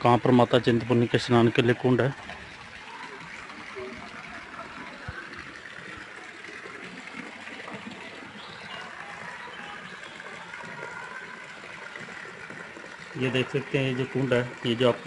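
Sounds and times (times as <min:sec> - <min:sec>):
running water hiss: 0:00.0 - 0:15.0.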